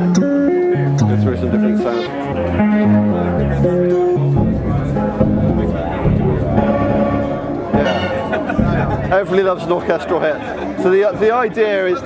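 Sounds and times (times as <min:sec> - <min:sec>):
synthesizer stepping pitched notes: 0:00.0 - 0:10.8.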